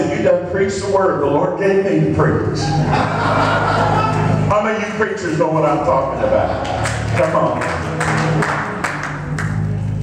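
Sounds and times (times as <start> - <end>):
sustained organ chords: 0.0 - 10.0
congregation clapping: 6.5 - 9.8.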